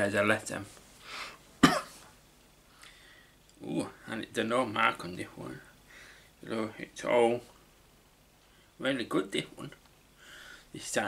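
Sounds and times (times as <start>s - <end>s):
short breath: 1.0s - 1.4s, 2.8s - 3.4s, 5.9s - 6.4s, 10.2s - 10.7s
man coughing: 1.6s - 2.0s.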